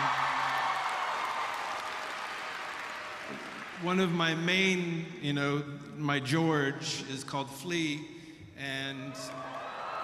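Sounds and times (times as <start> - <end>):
audience applauding: 0.0 - 4.0.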